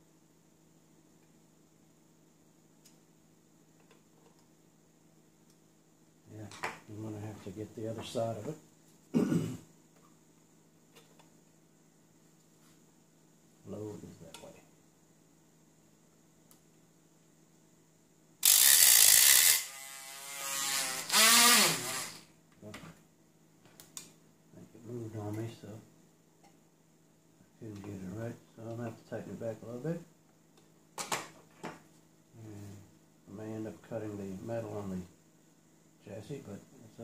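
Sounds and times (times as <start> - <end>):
rotary tool grinding metal: 18.4 - 22.2.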